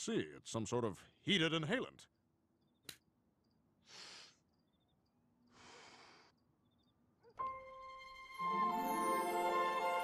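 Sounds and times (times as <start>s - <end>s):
man breathing: 3.8s - 4.6s, 5.4s - 6.5s.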